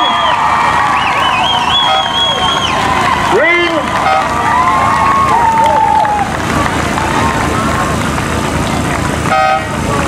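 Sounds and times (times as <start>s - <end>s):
outdoor background noise: 0.0s - 10.0s
short horn blast: 1.8s - 2.4s, 3.9s - 4.4s, 9.3s - 9.8s.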